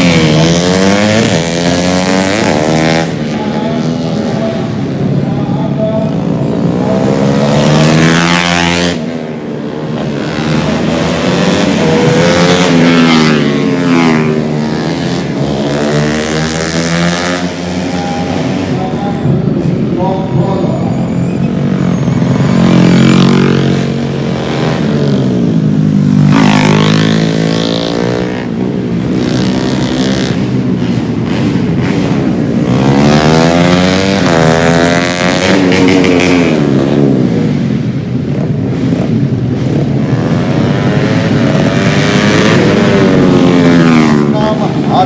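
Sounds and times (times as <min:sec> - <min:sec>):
motorcycles revving past: 0:00.0 - 0:20.6, 0:21.4 - 0:45.0.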